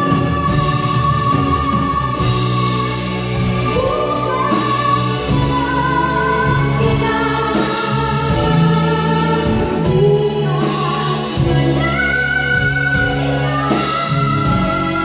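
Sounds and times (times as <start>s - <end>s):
live band playing: 0.0s - 15.0s
woman singing into a microphone: 0.0s - 15.0s.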